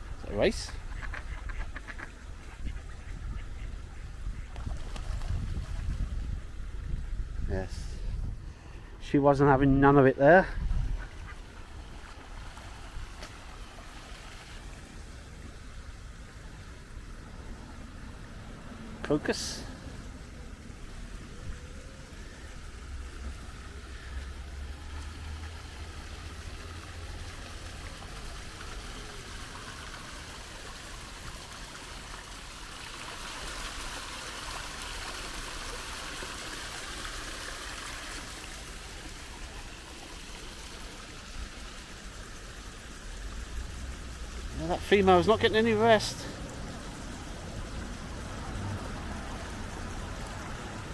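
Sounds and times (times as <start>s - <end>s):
water splashing over rocks: 11.1s - 16.9s, 22.2s - 50.9s.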